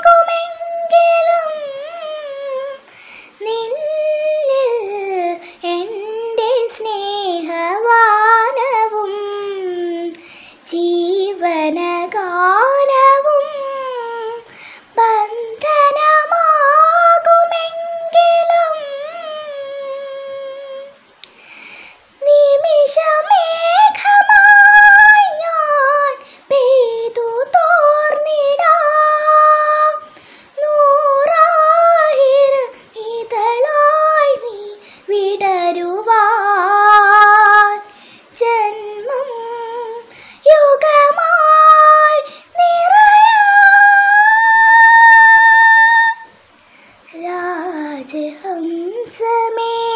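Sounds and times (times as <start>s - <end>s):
girl singing solo: 0.0s - 21.1s, 22.0s - 49.9s.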